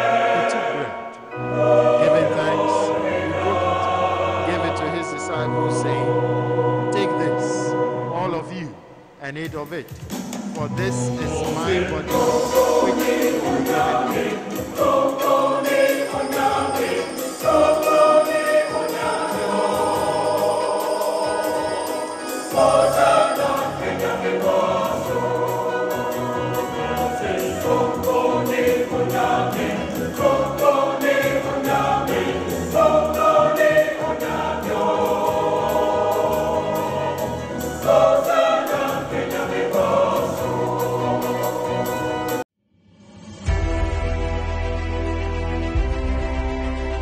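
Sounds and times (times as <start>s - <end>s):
church choir singing a hymn: 0.0s - 8.6s, 11.1s - 42.4s.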